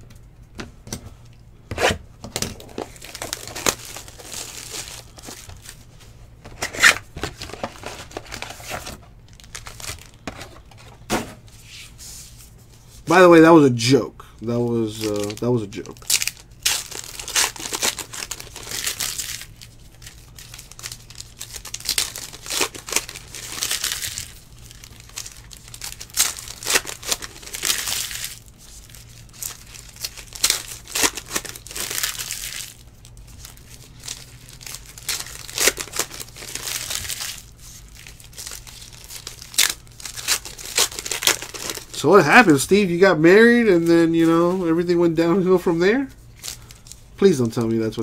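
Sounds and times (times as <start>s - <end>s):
foil wrappers tearing and crinkling: 2.5s - 5.8s, 6.4s - 10.8s, 14.8s - 45.6s, 46.4s - 48.0s.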